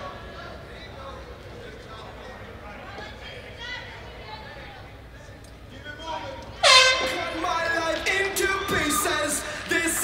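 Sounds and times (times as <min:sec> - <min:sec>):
loud air horn blast: 0:06.6 - 0:07.5
spectators' voices: 0:06.6 - 0:10.0.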